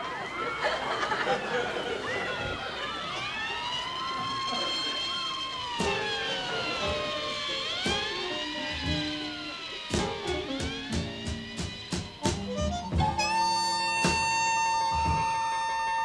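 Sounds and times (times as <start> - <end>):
sirens wailing: 0.0 - 16.0
music: 5.6 - 16.0.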